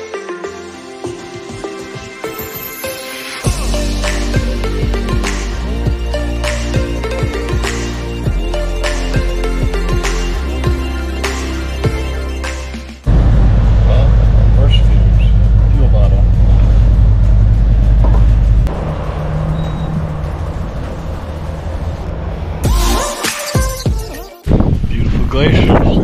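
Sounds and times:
motorcycle engine rumble: 0:13.1 - 0:22.6
wind on microphone: 0:24.5 - 0:26.0.

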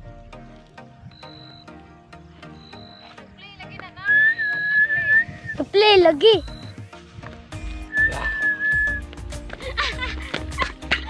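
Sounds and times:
background music with beat: 0:00.0 - 0:11.0
high whistled note: 0:04.1 - 0:05.6, 0:07.8 - 0:09.0.

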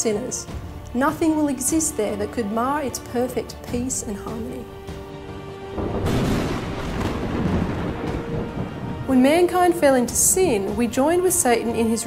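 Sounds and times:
thunder rumbling: 0:05.7 - 0:11.5.

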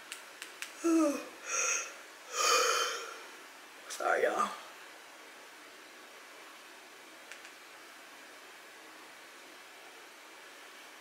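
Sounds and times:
steady hiss: 0:00.0 - 0:11.0
faint click: 0:07.3 - 0:07.6.

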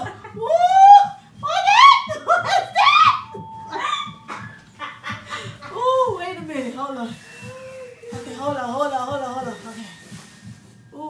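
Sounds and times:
women laughing: 0:00.0 - 0:03.1, 0:03.7 - 0:06.5.

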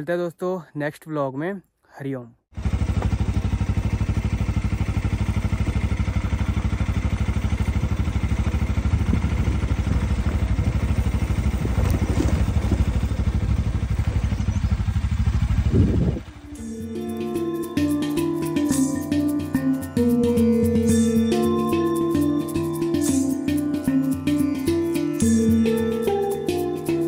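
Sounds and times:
motorcycle engine running: 0:02.6 - 0:27.0
music: 0:16.4 - 0:27.0.

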